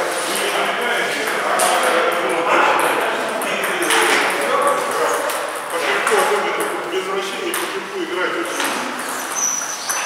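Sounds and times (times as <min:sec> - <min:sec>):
people talking: 0:00.0 - 0:09.0.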